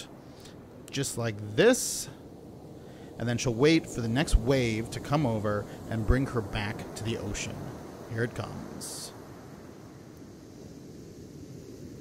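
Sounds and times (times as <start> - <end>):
surf on a sandy beach: 0.0 - 12.0.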